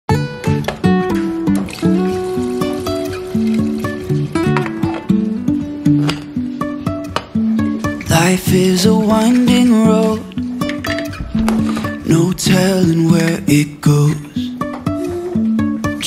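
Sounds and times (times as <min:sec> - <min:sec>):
instrumental music intro: 0:00.1 - 0:16.0.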